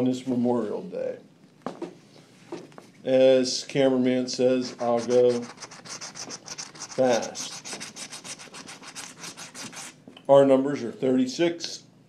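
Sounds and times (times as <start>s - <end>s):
scratching lottery ticket: 4.6s - 10.0s.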